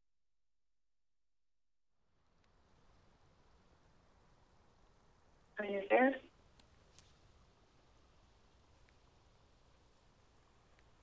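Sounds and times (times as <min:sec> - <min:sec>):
faint click: 0:08.8 - 0:09.0, 0:10.7 - 0:11.0.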